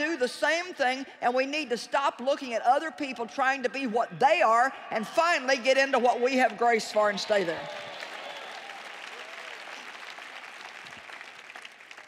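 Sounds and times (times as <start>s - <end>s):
large audience applauding: 6.5s - 12.0s.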